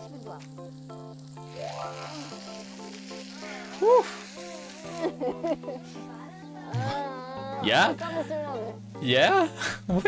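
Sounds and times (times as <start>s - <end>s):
background music: 0.0s - 10.0s
steak sizzling on a grill: 0.0s - 10.0s.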